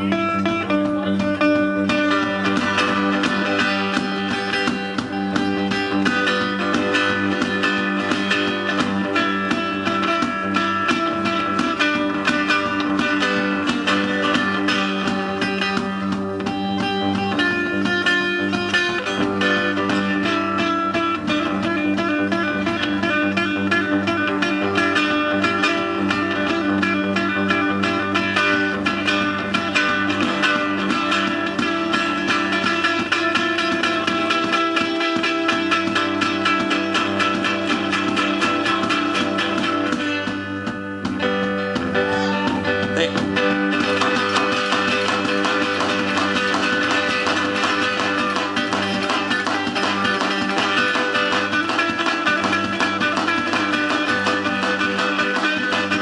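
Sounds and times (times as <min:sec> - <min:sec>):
acoustic guitar strummed fast: 0:00.0 - 0:56.0.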